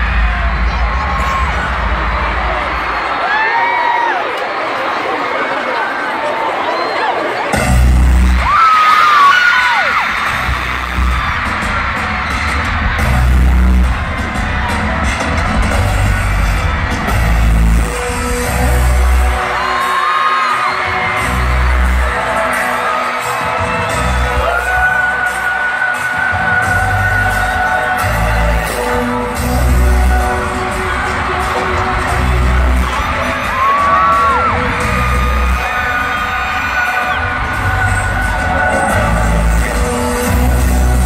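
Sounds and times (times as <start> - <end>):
crowd screaming and cheering: 0.0 - 41.0
heavy bass booms: 10.3 - 19.2.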